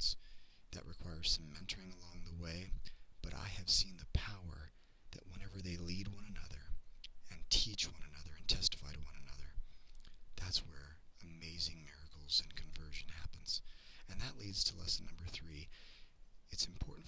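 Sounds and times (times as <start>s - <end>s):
man talking: 0.0s - 9.6s, 10.4s - 15.8s, 16.5s - 17.0s.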